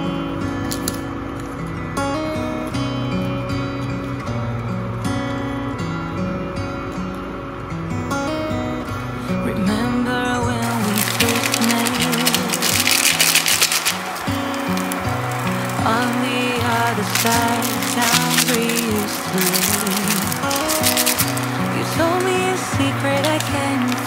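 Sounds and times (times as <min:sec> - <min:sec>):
instrumental pop music: 0:09.3 - 0:24.0
noodles sizzling in a frying pan: 0:10.6 - 0:24.0.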